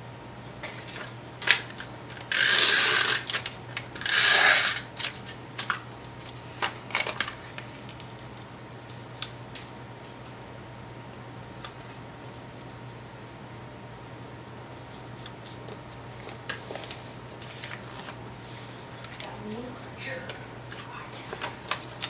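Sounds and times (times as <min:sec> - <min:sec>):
paper handling clicks and taps: 0:04.9 - 0:10.5, 0:20.3 - 0:22.0.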